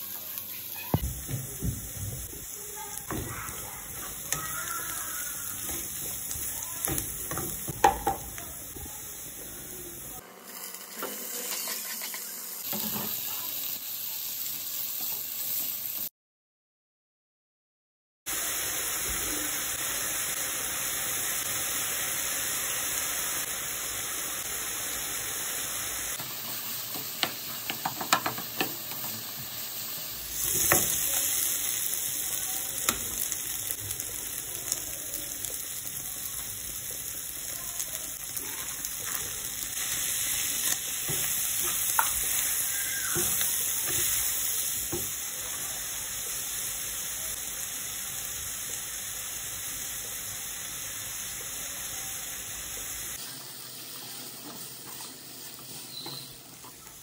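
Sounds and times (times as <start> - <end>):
food sizzling in a frying pan: 0.0 - 16.1, 18.3 - 57.0.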